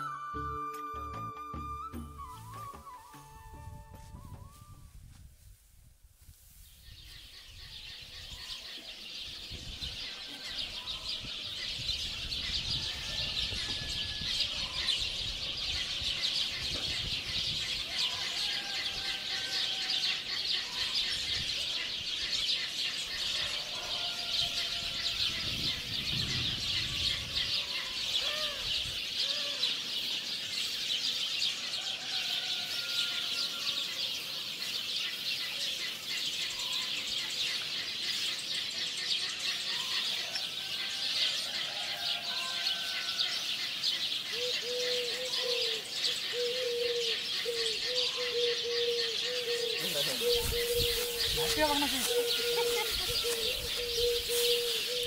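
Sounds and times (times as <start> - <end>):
small birds chirping: 19.7 - 55.0
repeated lower bird calls: 43.4 - 55.0.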